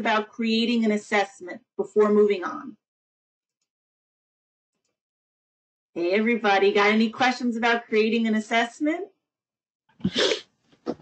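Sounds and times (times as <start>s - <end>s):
person's breathy vocal sound: 10.0s - 10.4s.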